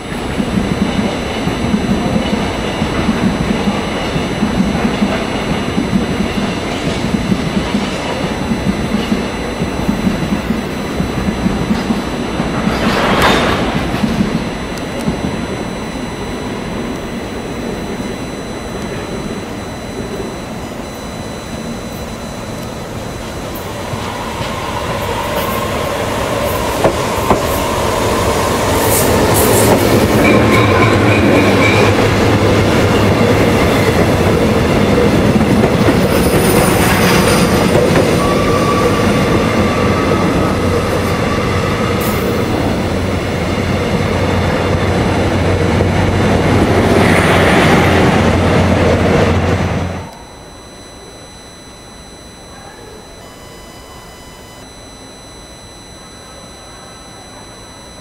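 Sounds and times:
train rail and wheel noise: 0.0s - 50.5s
thin high whistle: 50.0s - 58.0s.

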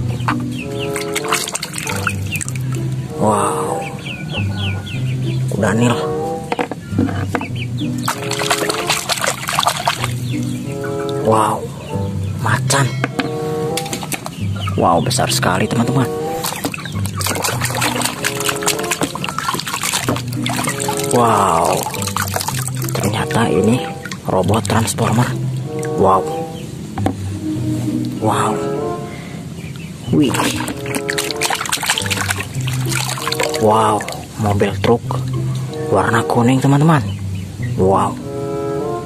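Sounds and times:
water sloshing in a plastic basin: 0.0s - 3.1s, 8.0s - 10.6s, 13.8s - 25.9s, 30.2s - 35.8s
chickens clucking: 0.0s - 38.8s
background music of held notes: 0.0s - 39.0s.

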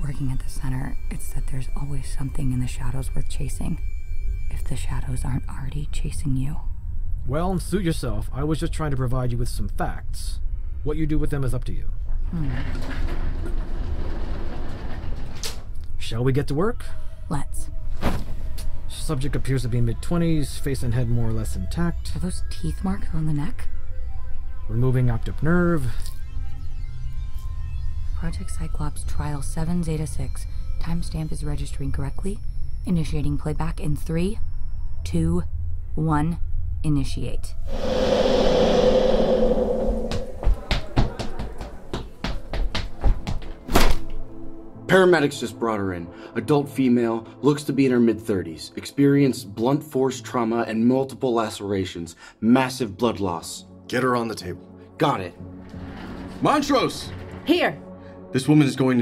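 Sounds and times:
sound-effect swell with hum: 37.6s - 41.0s.

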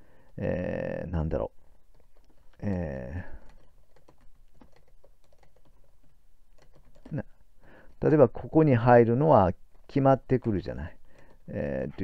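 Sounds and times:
keyboard typing: 1.8s - 8.6s, 9.7s - 11.7s.

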